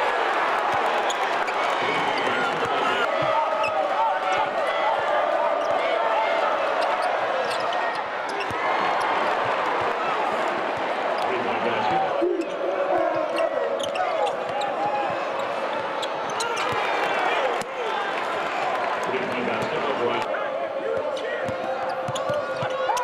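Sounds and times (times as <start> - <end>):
crowd voices din: 0.0 - 23.0.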